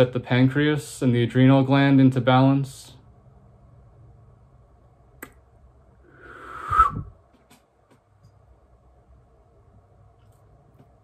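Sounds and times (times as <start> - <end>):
person blowing out breath: 6.0 - 7.1.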